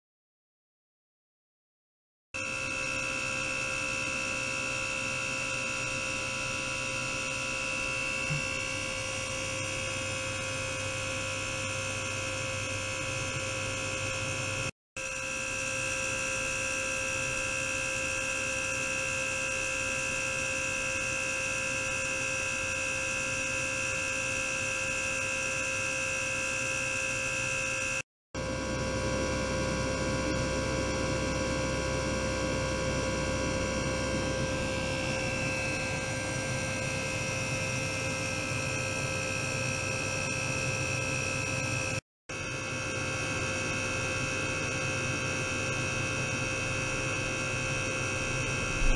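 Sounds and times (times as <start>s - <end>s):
lab equipment humming: 2.4s - 15.6s, 24.4s - 48.9s.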